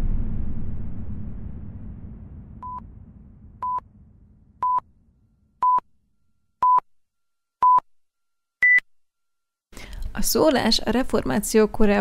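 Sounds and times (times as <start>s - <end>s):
short electronic beep: 2.6s - 2.8s, 3.6s - 3.8s, 4.6s - 4.8s.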